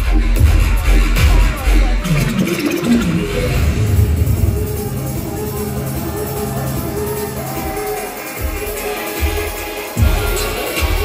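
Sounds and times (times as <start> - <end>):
deep bass: 0.0 - 11.0
dubstep dj set over sound system: 0.0 - 11.0.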